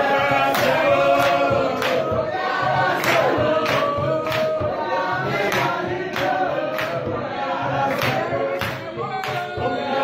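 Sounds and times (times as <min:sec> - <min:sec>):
congregation singing: 0:00.0 - 0:10.0
hand claps in time: 0:00.3 - 0:07.2, 0:07.8 - 0:09.8.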